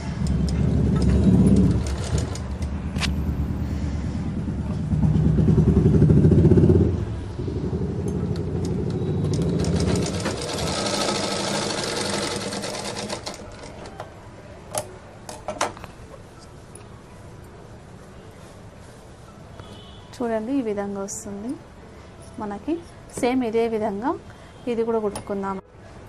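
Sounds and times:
sewing machine motor running: 8.8 - 13.7.

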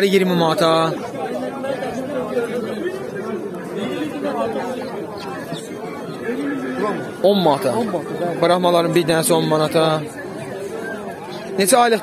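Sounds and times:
people talking at a market: 0.0 - 12.0.

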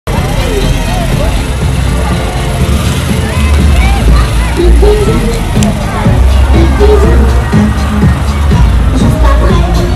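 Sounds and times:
car engine running: 0.1 - 9.9
people's voices: 0.1 - 9.9
street noise rumble: 0.1 - 9.9.

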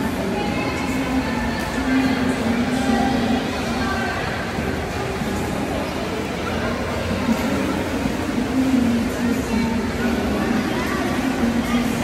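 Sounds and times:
rumbling swimming pool hall noise: 0.0 - 12.0.

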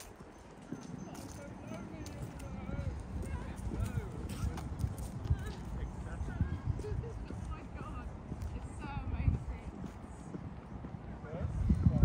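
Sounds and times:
footsteps on paved path: 0.0 - 12.0
people talking: 0.7 - 10.2.

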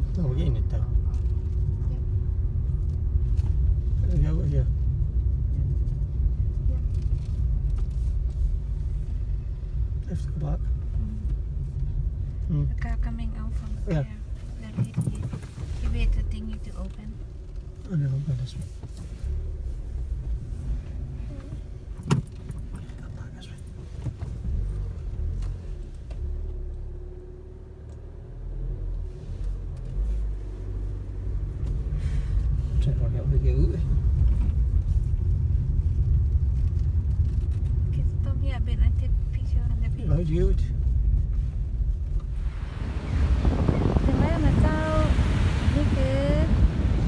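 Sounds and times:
car engine and road rumble: 0.0 - 47.0
wind: 0.0 - 47.0
waves washing: 42.3 - 47.0.

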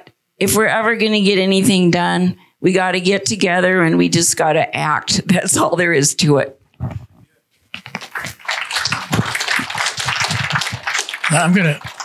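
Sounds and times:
audience applauding: 7.8 - 12.0.

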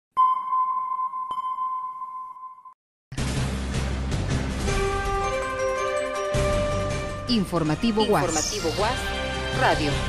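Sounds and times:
bell-like ping: 0.2 - 2.8.

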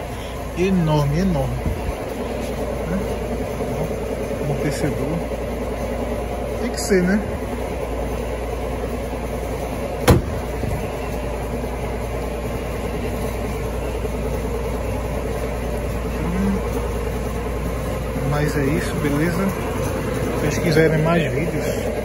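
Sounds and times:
steady background hum: 0.0 - 22.0
car trunk lid slamming: 10.0 - 10.6.

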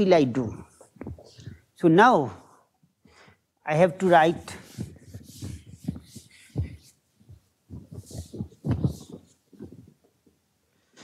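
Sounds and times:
cloth rubbing chalkboard: 4.0 - 10.0.

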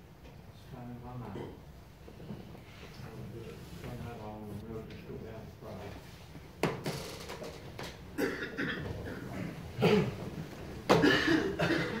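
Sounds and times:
person coughing: 8.2 - 10.2, 10.9 - 12.0.

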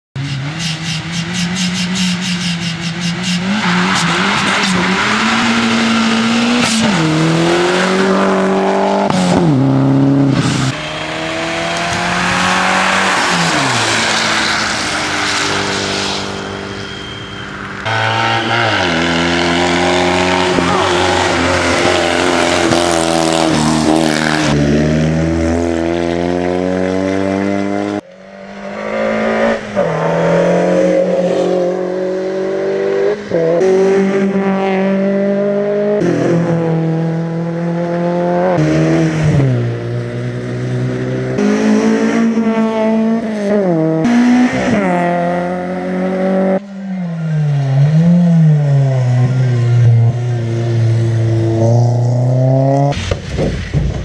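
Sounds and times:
rally car engines revving: 0.2 - 54.0.

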